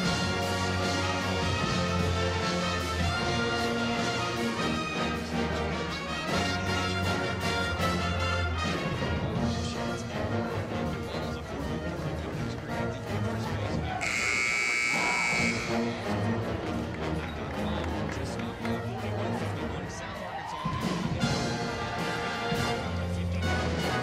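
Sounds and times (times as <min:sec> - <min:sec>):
brass band playing: 0:00.0 - 0:11.2, 0:13.9 - 0:17.5, 0:21.2 - 0:24.0
arena horn buzz: 0:14.0 - 0:16.0.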